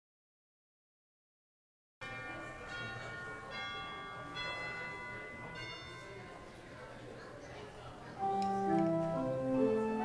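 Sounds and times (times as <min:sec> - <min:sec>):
church bell chimes: 0:02.0 - 0:07.4.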